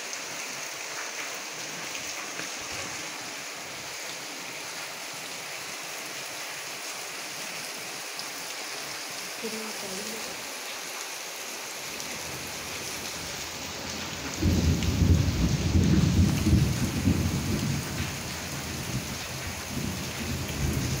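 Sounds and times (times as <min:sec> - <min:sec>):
steady rain: 0:00.0 - 0:21.0
thunder rumbling: 0:13.8 - 0:21.0.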